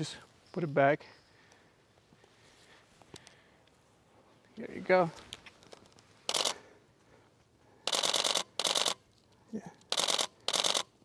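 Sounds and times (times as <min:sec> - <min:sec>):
camera shutter bursts: 0:06.2 - 0:06.6, 0:07.8 - 0:09.0, 0:09.9 - 0:10.9.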